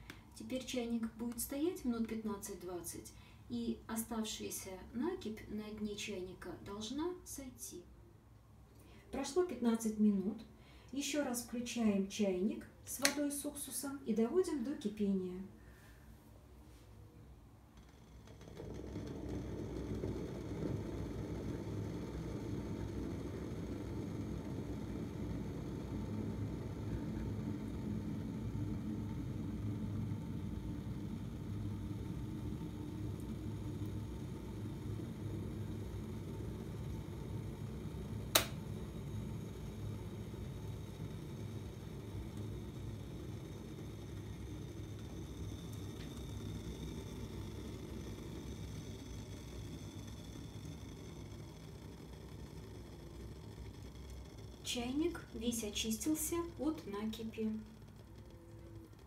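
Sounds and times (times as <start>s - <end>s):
kettle switch click: 13.0s - 13.2s, 38.3s - 38.6s
kettle water boiling: 17.5s - 59.0s.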